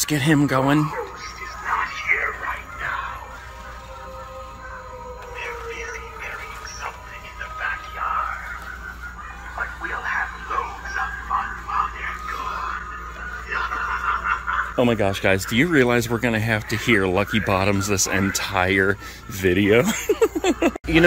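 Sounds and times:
steady hum: 0:00.0 - 0:21.0.

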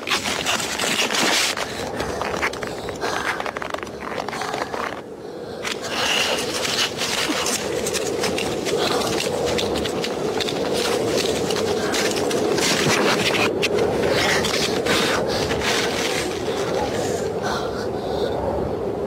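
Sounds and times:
ice skate blades scraping ice: 0:00.0 - 0:05.0, 0:05.7 - 0:17.2
steady rushing noise: 0:00.0 - 0:19.0.

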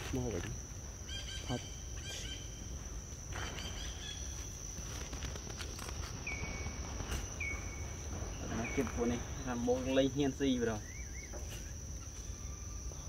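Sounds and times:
insects droning: 0:00.0 - 0:13.0.

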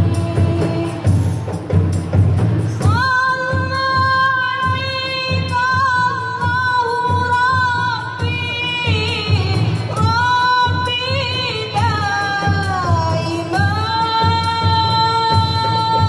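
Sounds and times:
frame drums beating: 0:00.0 - 0:16.0.

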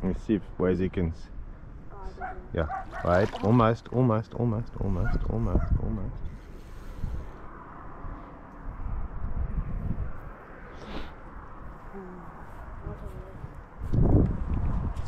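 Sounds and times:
wind rumbling on microphone: 0:04.6 - 0:15.0.

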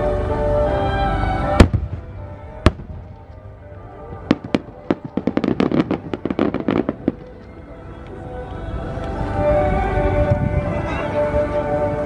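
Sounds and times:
firework shells bursting: 0:04.2 - 0:07.6.

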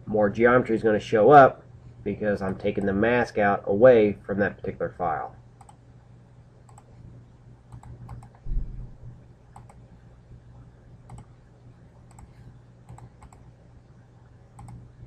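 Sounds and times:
steady low hum: 0:00.0 - 0:15.0
computer mouse clicking: 0:05.6 - 0:05.8, 0:06.6 - 0:07.0, 0:07.7 - 0:08.4, 0:09.5 - 0:09.8, 0:11.0 - 0:11.3, 0:12.0 - 0:13.5, 0:14.5 - 0:14.9
low thump: 0:08.5 - 0:09.0.

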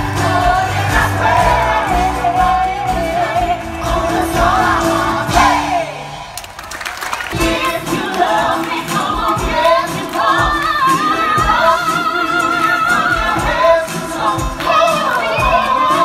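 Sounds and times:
stage-show music with singing: 0:00.0 - 0:16.0.

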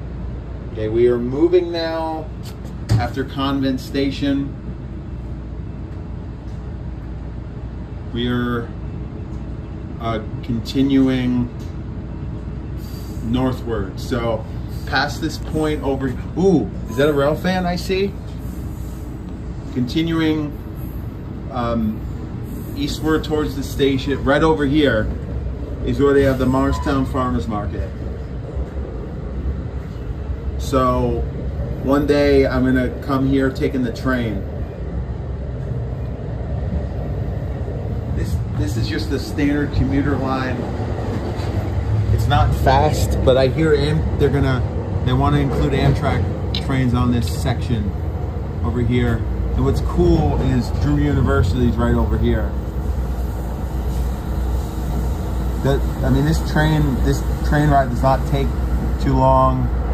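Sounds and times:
train rumbling: 0:00.0 - 0:59.9.

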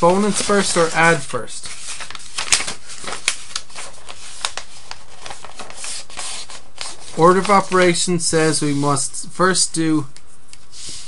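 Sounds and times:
recording hiss: 0:05.7 - 0:11.0.

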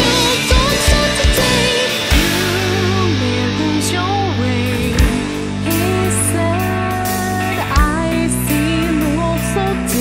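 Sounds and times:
heavy drum hit: 0:00.0 - 0:03.6, 0:04.7 - 0:06.0
rock song with singing: 0:00.0 - 0:10.0.

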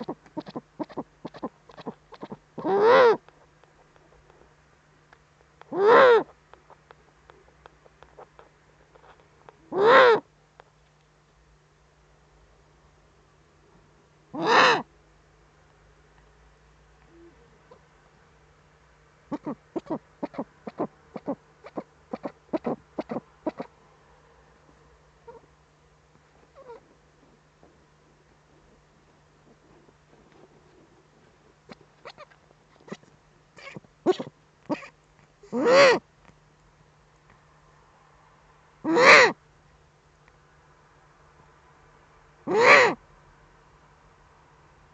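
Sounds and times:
owl call: 0:00.0 - 0:03.2, 0:05.7 - 0:06.3, 0:09.7 - 0:10.2, 0:14.4 - 0:14.9, 0:19.3 - 0:23.7, 0:35.5 - 0:36.0, 0:38.8 - 0:39.4, 0:42.5 - 0:43.0
faint low hum: 0:00.0 - 0:44.9.

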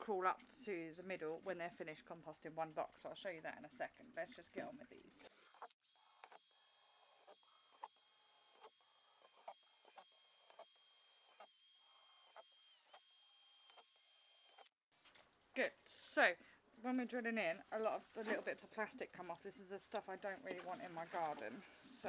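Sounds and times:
faint cordless drill whine: 0:05.4 - 0:14.8.

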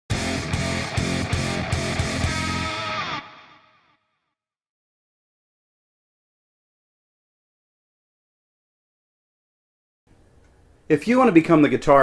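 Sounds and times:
distorted electric guitar riff: 0:00.1 - 0:04.0.

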